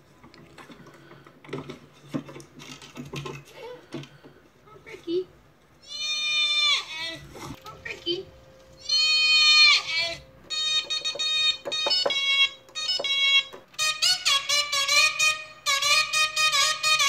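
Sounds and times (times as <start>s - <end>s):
goat screaming: 5.8s - 7.2s, 8.8s - 10.2s.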